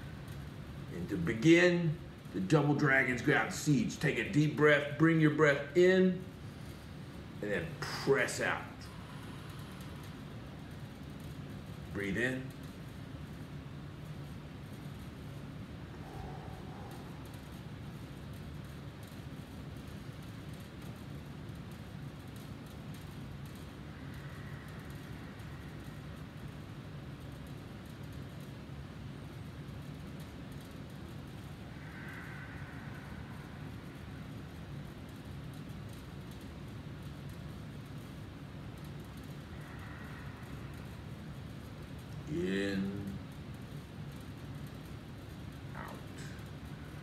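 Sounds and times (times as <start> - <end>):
low hum and hiss: 0.0 - 47.0.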